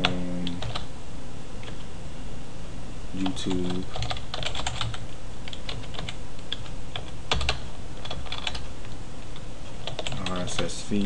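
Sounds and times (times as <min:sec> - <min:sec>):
computer keyboard typing: 0:00.0 - 0:00.9, 0:03.2 - 0:10.8.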